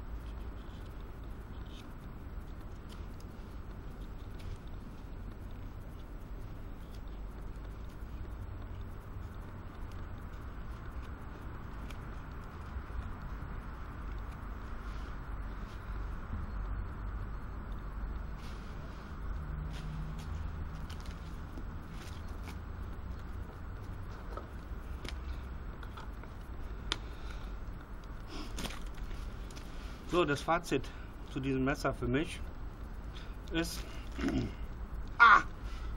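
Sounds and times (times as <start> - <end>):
low outdoor rumble: 0.0 - 35.9.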